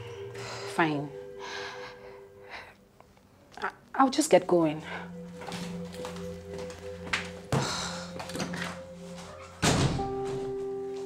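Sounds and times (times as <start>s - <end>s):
woman breathing: 0.1s - 3.4s, 7.5s - 8.3s.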